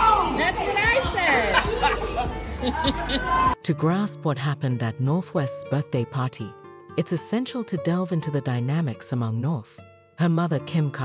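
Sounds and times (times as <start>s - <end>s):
people chattering and calling out: 0.0s - 3.6s.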